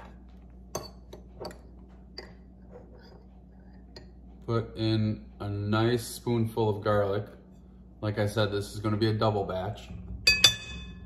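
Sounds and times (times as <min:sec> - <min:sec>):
metal spoon clinking on glass: 0:10.3 - 0:11.0.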